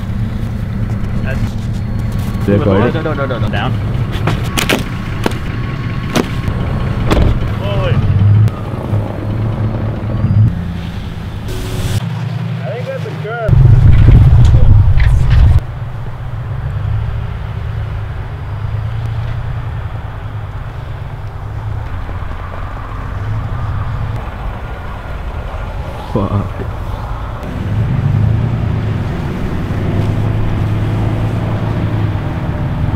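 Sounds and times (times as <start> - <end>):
truck engine rumbling: 0.0 - 32.9
loud low rush: 13.5 - 32.9.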